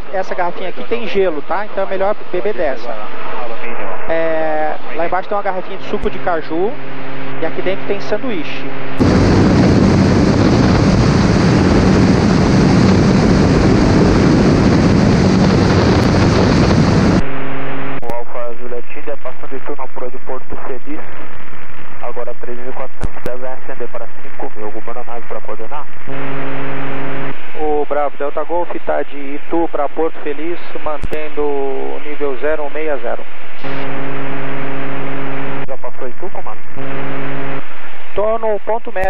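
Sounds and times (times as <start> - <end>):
wind and aircraft engine noise: 0.0 - 18.0
voices over radio: 0.1 - 5.8.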